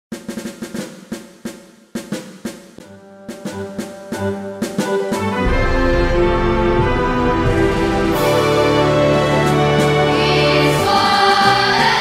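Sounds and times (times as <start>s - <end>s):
snare drum strokes: 0.1s - 12.0s
hymn accompaniment instruments: 3.4s - 12.0s.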